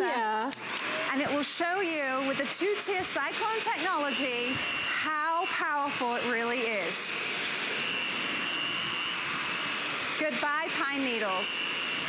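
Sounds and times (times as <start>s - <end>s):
vacuum cleaner running: 0.5s - 12.0s.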